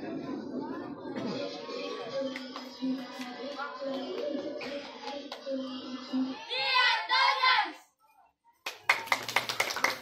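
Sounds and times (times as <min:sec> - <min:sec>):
people clapping: 0:02.3 - 0:05.5, 0:08.6 - 0:10.0.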